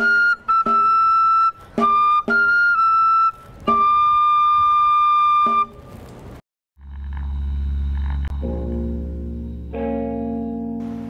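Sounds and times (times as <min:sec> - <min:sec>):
pipe melody: 0:00.0 - 0:06.1, 0:06.8 - 0:11.0
music with low drone: 0:06.8 - 0:11.0.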